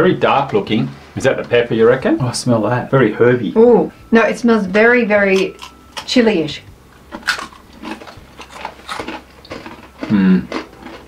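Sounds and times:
mouth crunching pretzels: 7.1 - 11.0.

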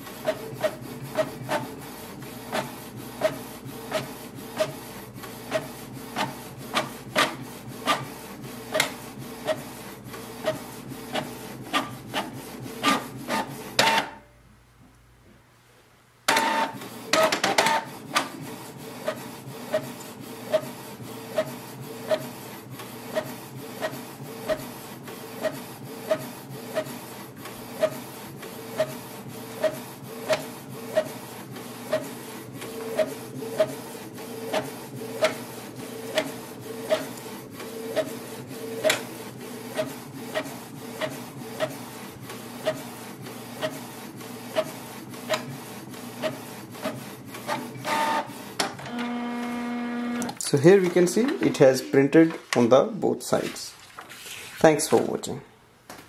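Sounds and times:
paper feed whirring: 0.0 - 14.1, 16.3 - 55.1.

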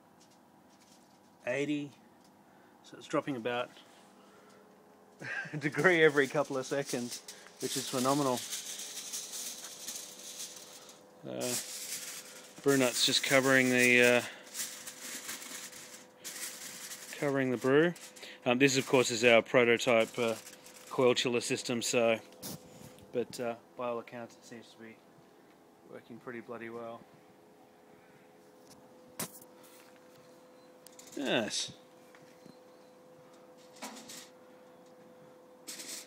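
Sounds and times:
faint steady hum: 0.0 - 36.0
aluminium foil crinkling: 0.2 - 1.4, 5.5 - 23.1.

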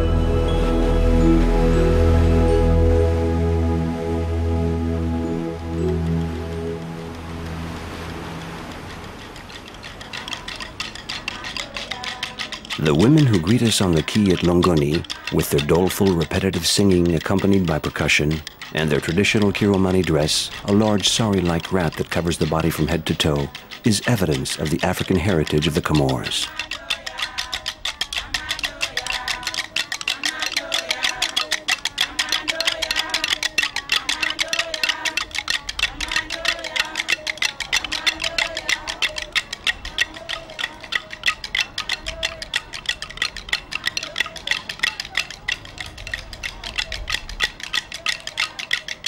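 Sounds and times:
soundtrack music with held tones: 0.0 - 9.8
fast dry percussion clicks: 5.7 - 49.0
wooden sticks clacking: 5.7 - 49.0
women singing a chant: 10.2 - 16.6, 26.2 - 46.9.

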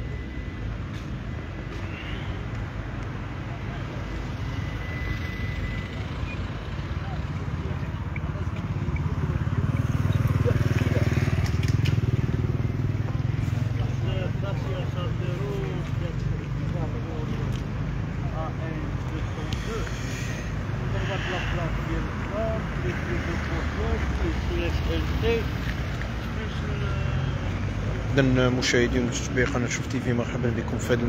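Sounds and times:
street noise: 0.0 - 31.0
vehicle engine running: 4.2 - 28.0
background voices: 6.2 - 28.1.

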